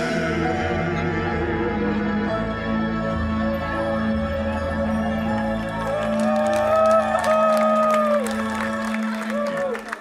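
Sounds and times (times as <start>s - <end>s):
singers in harmony: 0.0s - 10.0s
people clapping: 5.3s - 10.0s.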